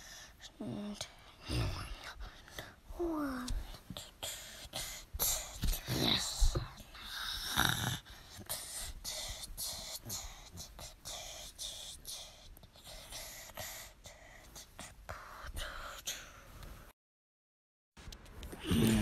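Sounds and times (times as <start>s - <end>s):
faint whispering: 0.3s - 16.5s, 18.5s - 19.0s.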